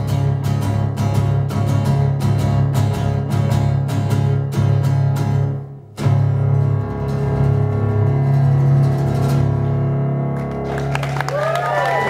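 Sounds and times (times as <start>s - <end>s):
acoustic guitar chords: 0.0s - 11.2s.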